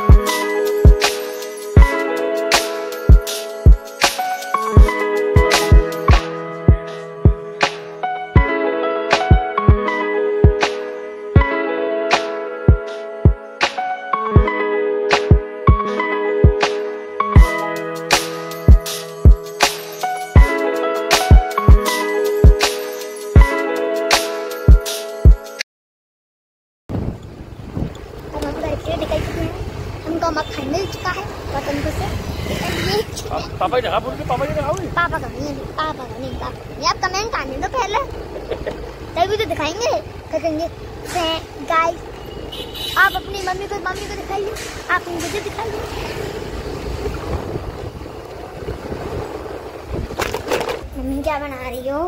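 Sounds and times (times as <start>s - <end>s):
wind buffeting microphone: 26.9s - 30.2s, 44.8s - 51.4s
vehicle rumble: 26.9s - 52.0s.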